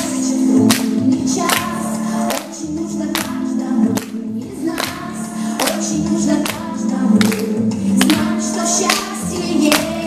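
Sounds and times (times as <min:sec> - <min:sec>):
children singing: 0:04.5 - 0:10.0.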